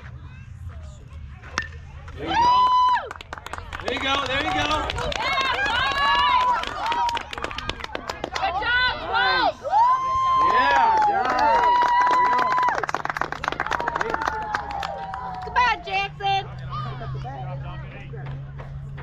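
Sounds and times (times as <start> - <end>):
long drawn-out yells: 8.6 - 12.8.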